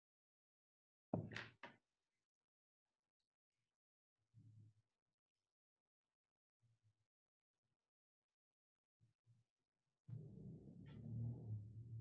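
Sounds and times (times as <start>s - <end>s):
quiet knock: 1.2s - 1.5s.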